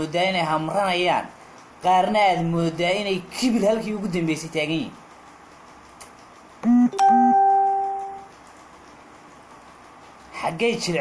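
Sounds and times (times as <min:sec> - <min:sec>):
electronic chime: 0:06.6 - 0:08.3
short buzzing tones: 0:06.6 - 0:08.3
ringing ding: 0:07.0 - 0:08.3.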